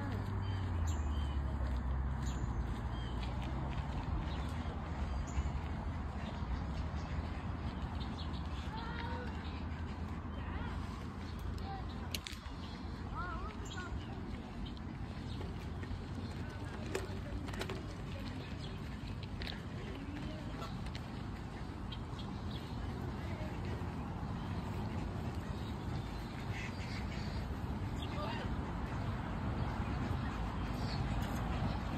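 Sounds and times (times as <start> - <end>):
geese calling: 19.6 - 31.9.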